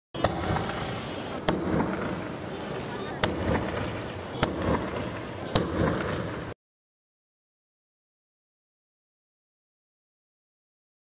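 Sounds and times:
firework bangs: 0.2 - 6.6
fireworks crackling and fizzing: 0.2 - 6.6.

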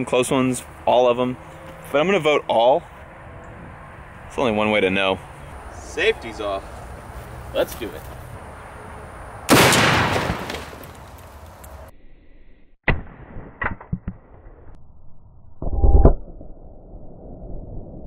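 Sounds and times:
loud deep boom: 9.5 - 10.8
rifle shot: 9.5 - 11.0.

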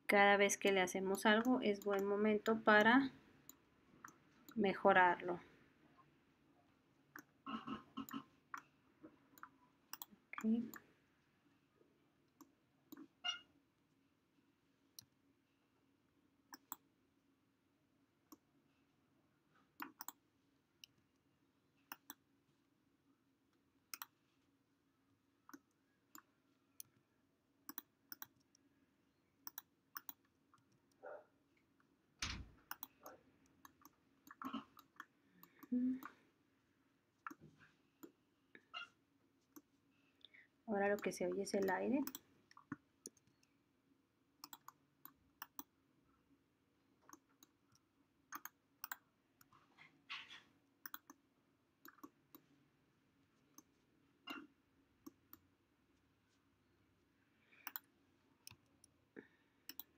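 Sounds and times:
mouse and keyboard clicks: 1.4 - 2.9, 9.4 - 10.8, 19.8 - 20.2, 21.9 - 22.2, 23.9 - 24.2, 27.7 - 28.6, 29.4 - 31.0, 32.2 - 35.6, 37.2 - 38.2, 40.9 - 43.4, 44.4 - 45.7, 48.3 - 49.5, 50.8 - 51.2, 51.8 - 52.5, 57.6 - 58.9, 59.7 - 59.9.

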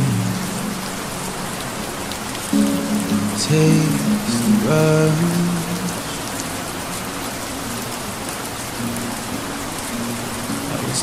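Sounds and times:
rain-like hiss: 0.0 - 11.0.

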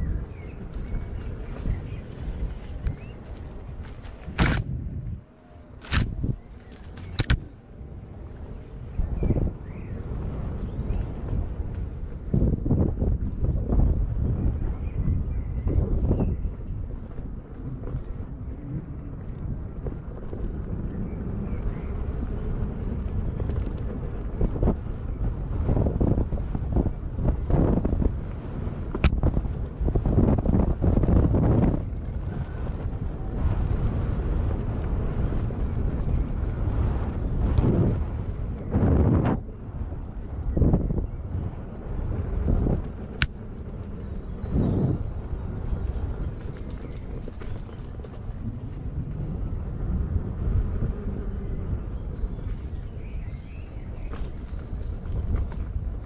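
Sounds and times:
wind noise on microphone: 0.0 - 56.0
sharp click: 6.8 - 7.4, 29.0 - 29.2.

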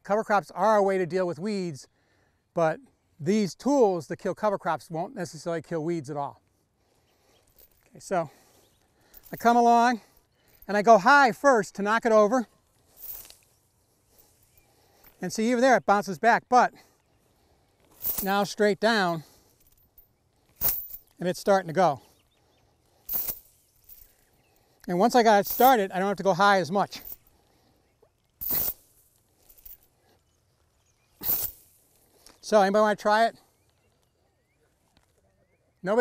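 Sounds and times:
rustling plants and chain: 6.4 - 36.0.

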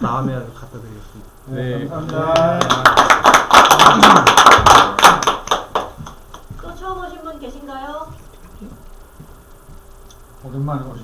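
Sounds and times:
people clapping: 2.0 - 6.5.

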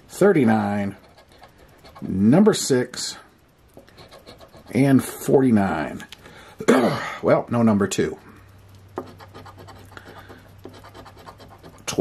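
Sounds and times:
lottery ticket being scratched: 0.2 - 2.7, 3.8 - 5.2, 9.0 - 12.0.

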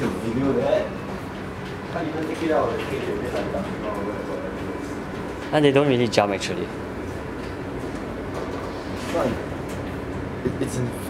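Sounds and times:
low hum and rumble: 0.0 - 11.0.

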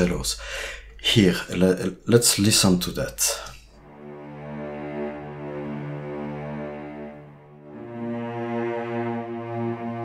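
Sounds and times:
cello section holding low note: 3.8 - 10.0.

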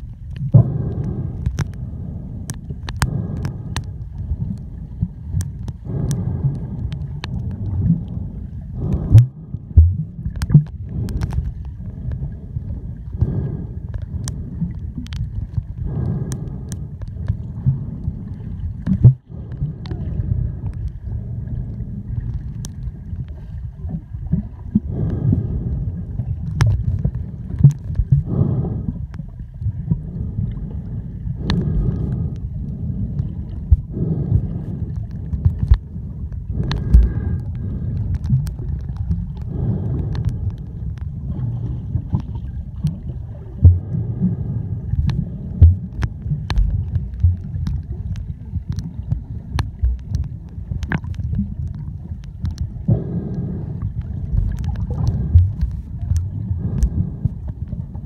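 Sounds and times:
low rumbling underwater noise: 0.0 - 58.0
sharp clicks and pops: 0.2 - 4.7, 5.3 - 8.2, 8.8 - 12.2, 13.2 - 18.2, 18.8 - 20.0, 26.4 - 28.3, 33.5 - 41.4, 44.9 - 57.4.

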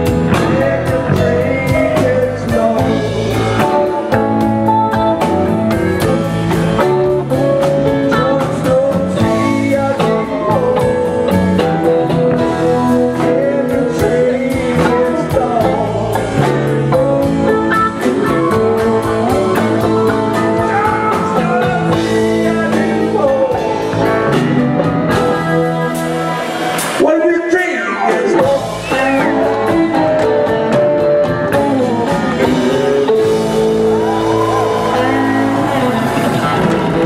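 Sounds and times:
live rock band playing: 0.0 - 37.0.

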